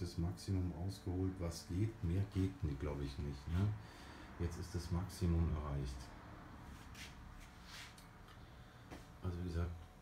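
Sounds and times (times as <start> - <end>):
soft hisses: 6.6 - 8.2.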